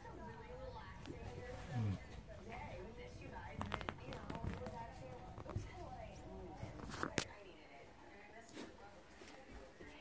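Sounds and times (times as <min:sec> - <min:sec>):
animals scuffling: 0:00.1 - 0:07.3.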